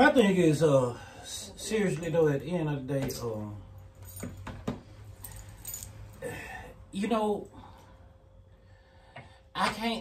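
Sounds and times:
low room hum: 0.0 - 10.0
metal bangles jingling: 5.2 - 6.2.

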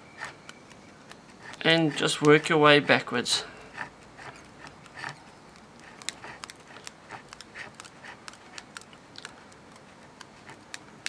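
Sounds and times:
thread ticking and rustling: 0.0 - 11.0.

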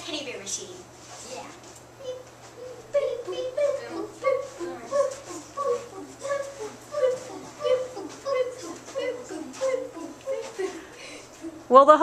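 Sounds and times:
children making high-pitched sounds: 2.0 - 11.6.

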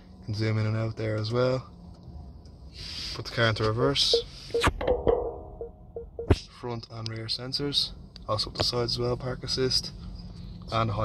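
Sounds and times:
parking sensor beeps: 4.1 - 4.8, 5.9 - 6.4.

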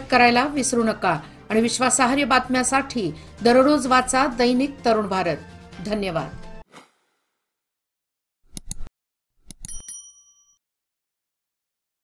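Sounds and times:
quick clicks: 8.5 - 8.9
bright bell ding: 9.6 - 10.6.

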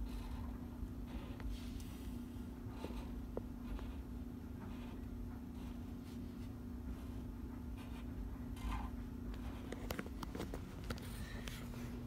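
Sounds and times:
marker pen scratching on wall: 0.0 - 11.6.

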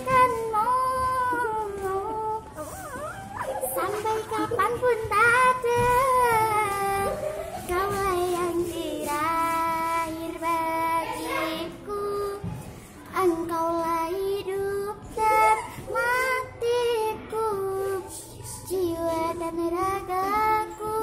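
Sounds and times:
girl singing unaccompanied: 0.0 - 21.0.

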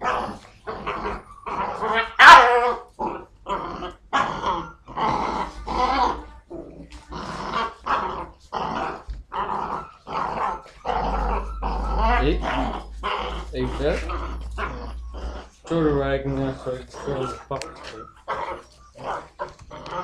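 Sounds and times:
puppy yapping: 0.0 - 6.3, 7.5 - 20.0
puppy growling: 0.0 - 20.0.

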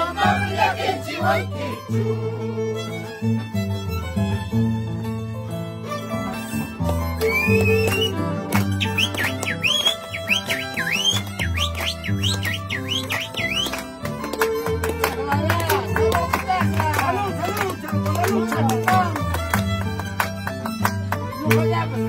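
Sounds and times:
men singing: 0.0 - 2.9
harp and violin playing lively tune: 0.0 - 22.0.

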